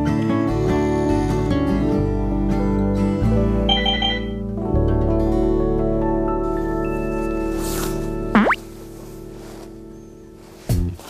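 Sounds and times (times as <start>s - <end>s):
gentle background music: 0.0s - 11.0s.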